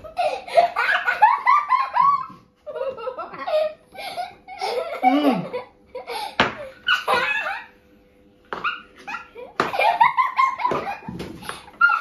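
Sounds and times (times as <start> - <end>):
young children laughing: 0.0 - 7.8, 8.6 - 12.0.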